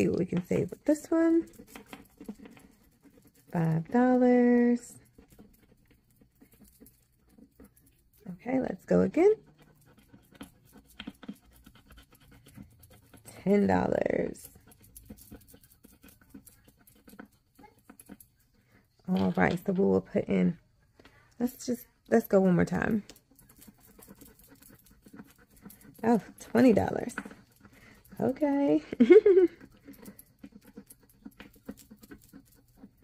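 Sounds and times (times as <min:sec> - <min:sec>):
coin scratching a card: 0:05.0 - 0:08.2, 0:09.4 - 0:13.6, 0:14.4 - 0:18.4, 0:29.5 - 0:33.0.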